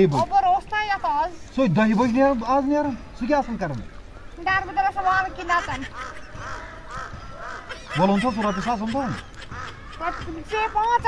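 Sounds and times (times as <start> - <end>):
birds calling: 0.0 - 11.0.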